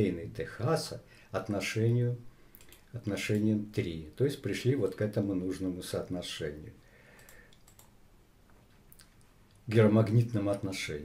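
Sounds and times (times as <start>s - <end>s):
soft computer clicks: 7.2s - 8.0s.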